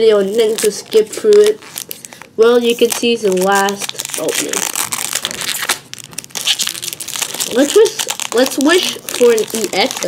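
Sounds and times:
foil wrapper crinkling torn open: 0.2s - 10.0s.

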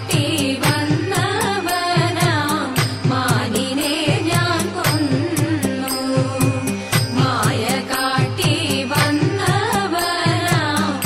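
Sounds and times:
person singing: 0.0s - 11.0s
steady percussion beat: 0.0s - 11.0s.

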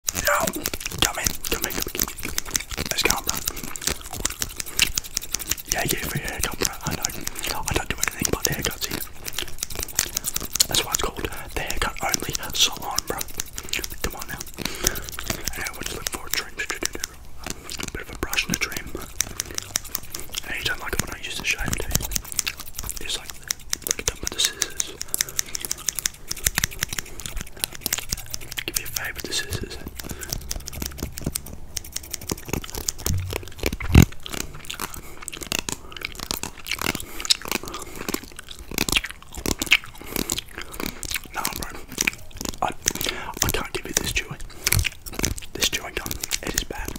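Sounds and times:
scissors snipping: 0.0s - 46.9s.

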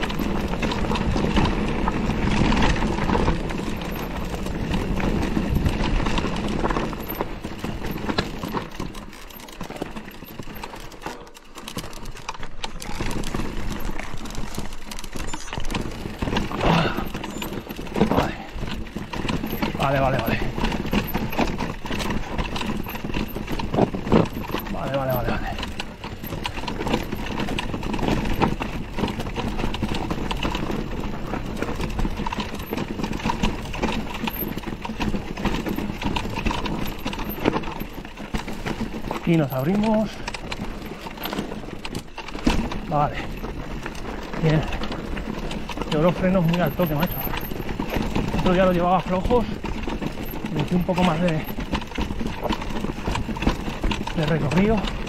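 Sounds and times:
bike chain and suspension rattle: 0.0s - 55.0s.

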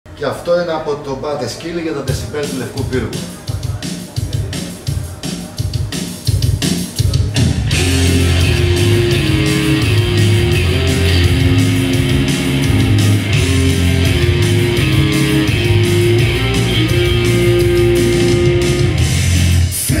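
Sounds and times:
punk rock song from vinyl: 2.1s - 20.0s.

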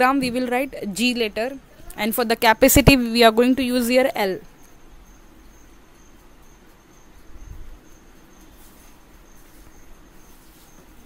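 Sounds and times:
faint high-pitched chirping: 0.2s - 11.0s.

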